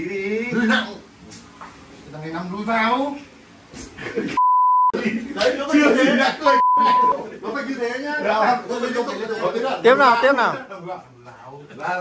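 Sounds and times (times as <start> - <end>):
censor bleep: 4.4 - 5.0, 6.5 - 7.2.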